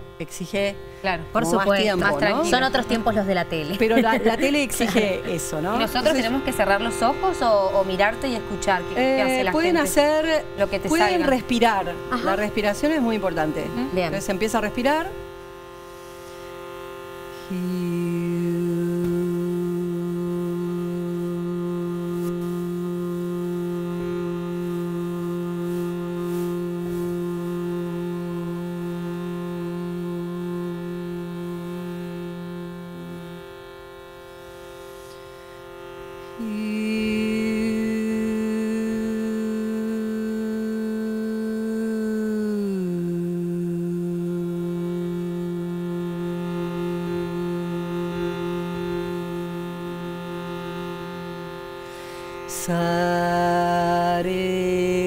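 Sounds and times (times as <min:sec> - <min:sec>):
woman singing long notes: 0:00.0 - 0:15.6, 0:17.2 - 0:55.0
reed drone: 0:00.0 - 0:55.0.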